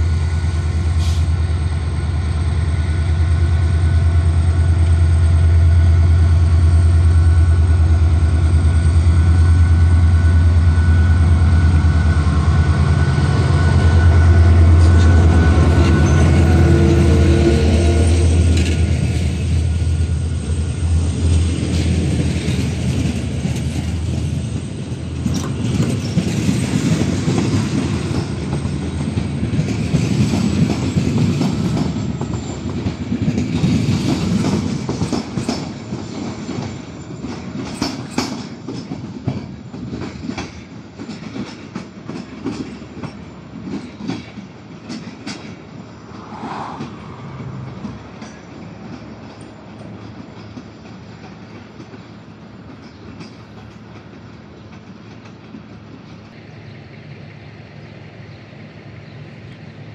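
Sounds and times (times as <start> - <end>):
train rumbling past: 0.0 - 59.9
wheels clicking over rail joints: 18.4 - 45.8, 46.8 - 56.4.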